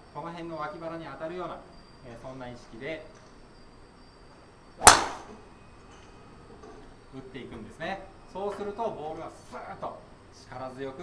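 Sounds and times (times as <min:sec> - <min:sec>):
golf club striking ball: 0:04.8 - 0:05.4.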